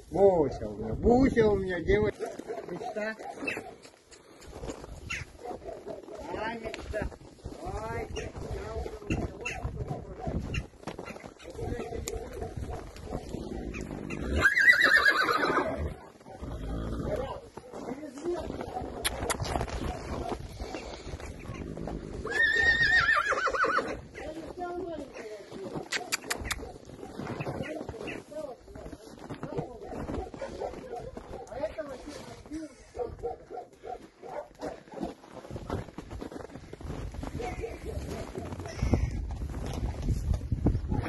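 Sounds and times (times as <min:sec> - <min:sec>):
horse whinnying: 0:13.8 - 0:17.2, 0:21.7 - 0:24.0.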